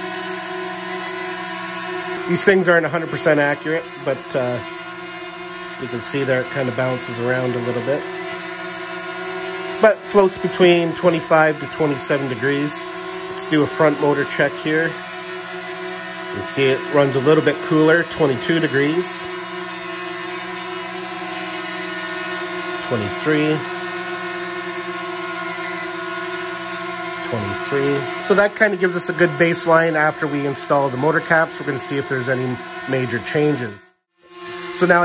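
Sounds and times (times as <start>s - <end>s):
quadcopter propellers humming: 0.0s - 35.0s
person speaking: 2.0s - 4.8s, 5.7s - 8.3s, 9.6s - 15.1s, 16.2s - 19.5s, 22.8s - 24.5s, 27.1s - 33.8s, 34.7s - 35.0s.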